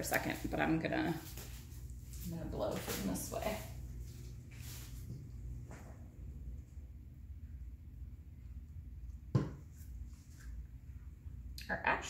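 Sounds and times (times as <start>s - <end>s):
low background hum: 0.0s - 12.0s
small object knocking on table: 9.3s - 9.6s.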